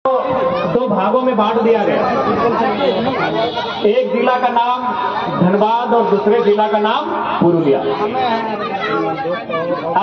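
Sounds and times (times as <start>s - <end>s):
crowd chatter: 0.1s - 10.0s.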